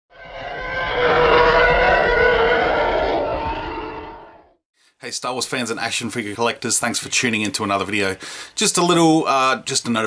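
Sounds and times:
dense pitched intro sound effect: 0.1s - 4.6s.

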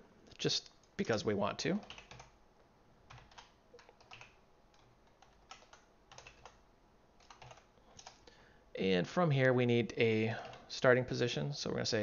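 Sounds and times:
computer keyboard typing: 1.8s - 2.4s, 3.1s - 6.6s, 7.2s - 8.2s, 10.4s - 10.6s.

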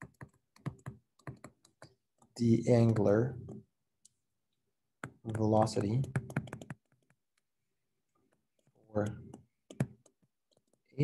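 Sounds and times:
stylus tapping on tablet screen: 0.0s - 3.6s, 5.0s - 7.5s, 8.2s - 10.9s.

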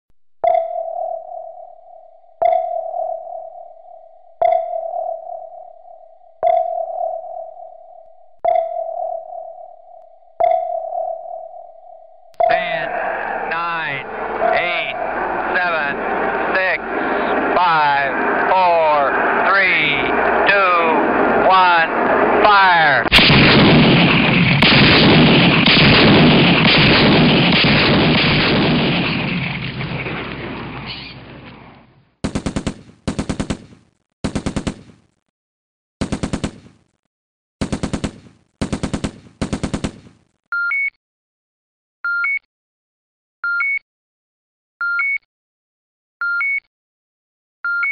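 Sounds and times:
sonar pings: 0.4s - 12.8s
gunfire and artillery roar: 12.5s - 35.2s, 36.0s - 37.0s, 37.6s - 40.3s
machine-gun bursts: 23.1s - 29.2s, 32.2s - 35.0s, 36.0s - 36.7s, 37.6s - 40.2s.

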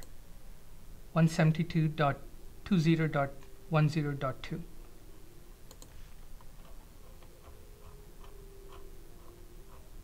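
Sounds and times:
soft regular ticking: 5.7s - 10.0s
faint steady tone: 7.0s - 10.0s.

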